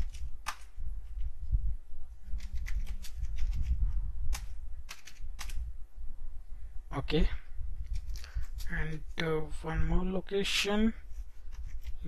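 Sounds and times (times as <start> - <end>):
low steady rumble: 0.0 - 12.0
computer keyboard keystrokes: 4.3 - 5.6.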